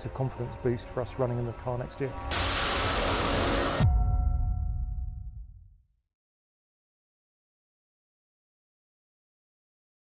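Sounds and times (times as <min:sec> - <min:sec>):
rocket motor firing: 0:02.3 - 0:03.9.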